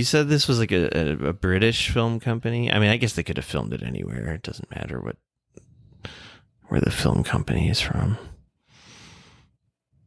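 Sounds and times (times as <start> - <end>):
person exhaling: 6.0 - 6.5, 8.6 - 9.5
person speaking: 6.1 - 8.4.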